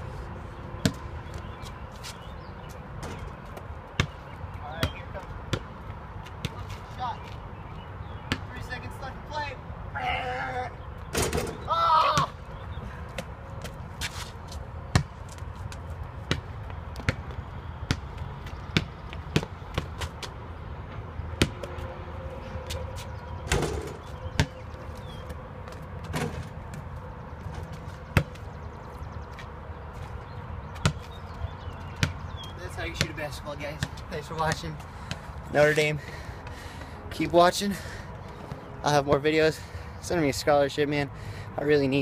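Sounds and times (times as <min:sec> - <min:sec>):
basketball bouncing on asphalt: 0:00.8 - 0:06.8, 0:08.0 - 0:08.6, 0:13.1 - 0:21.8, 0:22.8 - 0:35.5.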